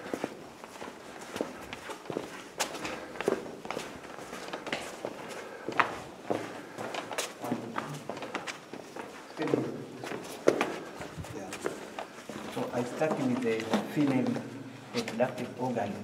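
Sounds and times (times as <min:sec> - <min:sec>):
footsteps in rock cave: 0:00.0 - 0:14.5.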